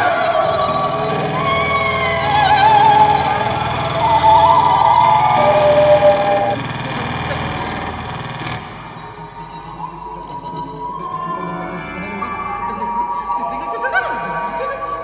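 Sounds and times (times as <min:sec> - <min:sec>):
quiet held tone: 0:00.0 - 0:07.9
low electronic drone: 0:00.0 - 0:15.0
person singing with wide vibrato: 0:00.0 - 0:15.0.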